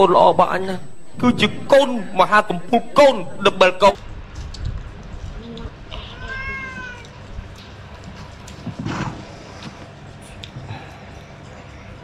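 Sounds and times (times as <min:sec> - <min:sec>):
meow-like call: 0:05.9 - 0:07.2.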